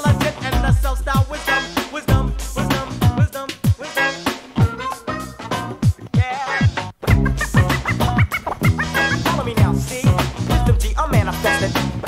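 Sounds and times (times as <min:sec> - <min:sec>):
bass: 0:00.0 - 0:12.0
hip hop beat: 0:00.0 - 0:12.0
turntable scratching: 0:00.0 - 0:12.0.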